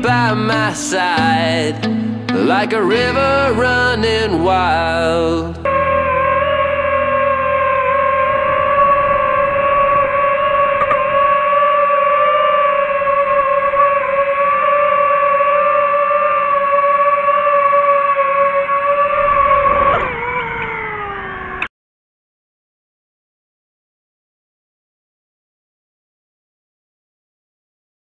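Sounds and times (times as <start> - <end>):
drone motors whining: 5.6 - 21.7.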